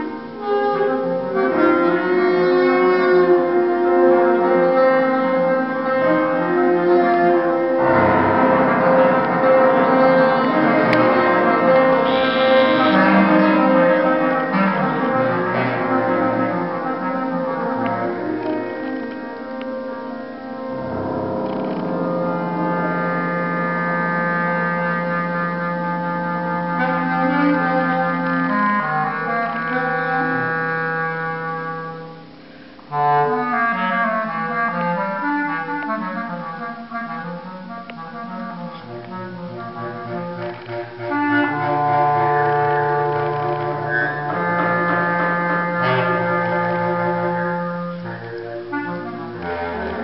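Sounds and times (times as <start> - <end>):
clarinet holding low note: 0.0 - 50.0.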